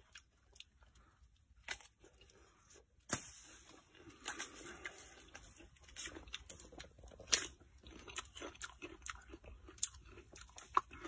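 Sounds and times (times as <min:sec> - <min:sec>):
chewing crisp melon: 0:00.0 - 0:03.0, 0:03.7 - 0:11.0.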